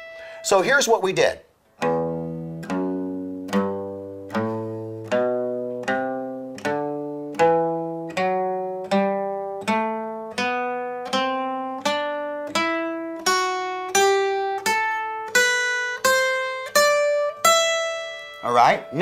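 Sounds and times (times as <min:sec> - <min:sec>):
acoustic guitar picking a scale: 0:00.0 - 0:19.0.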